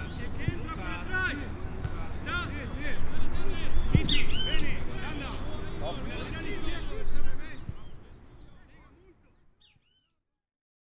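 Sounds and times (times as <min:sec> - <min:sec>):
faint distant voices: 0:00.0 - 0:10.0
birds chirping: 0:00.0 - 0:10.2.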